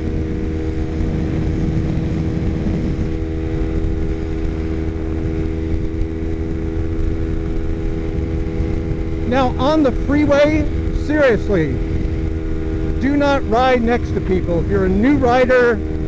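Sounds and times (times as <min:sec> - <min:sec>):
motorcycle engine humming: 0:00.0 - 0:16.0
wind and road noise: 0:00.0 - 0:16.0.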